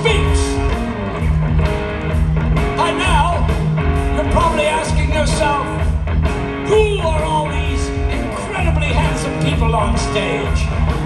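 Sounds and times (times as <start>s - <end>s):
bass and drums: 0.0s - 11.0s
electric guitar bending lead notes: 0.0s - 11.0s.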